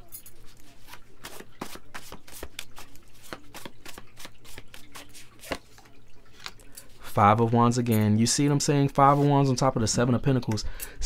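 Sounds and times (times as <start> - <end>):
cards being shuffled by hand: 0.0 - 6.6.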